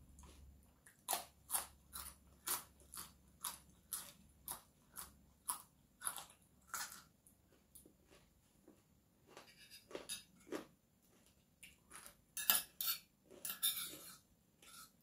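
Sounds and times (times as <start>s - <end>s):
crunching of bean being chewed: 0.1s - 12.2s.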